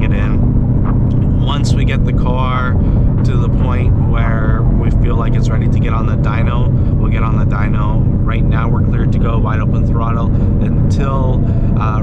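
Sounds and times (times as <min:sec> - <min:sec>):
man talking: 0:00.0 - 0:00.5, 0:01.1 - 0:12.0
car engine low drone: 0:00.0 - 0:12.0.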